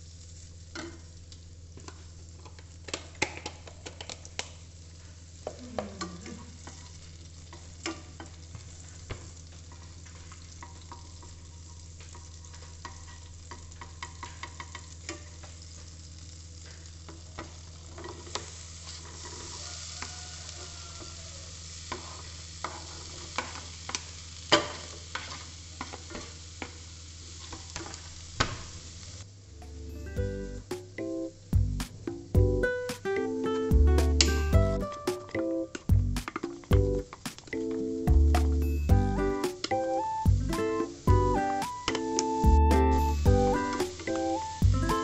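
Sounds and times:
butter sizzling in a pan: 0.0 - 45.0.

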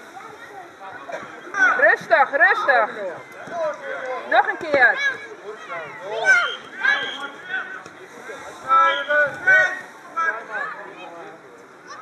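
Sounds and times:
children shouting: 4.9 - 7.7.

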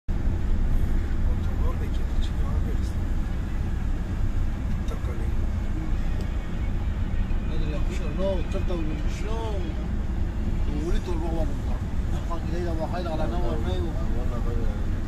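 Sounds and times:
vehicle rumble inside cabin: 0.1 - 15.0.

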